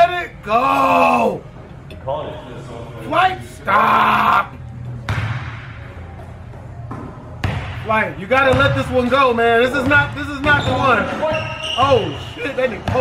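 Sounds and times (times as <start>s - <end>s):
basketball bouncing on hardwood: 6.9s - 7.8s, 8.4s - 8.9s, 9.8s - 10.9s.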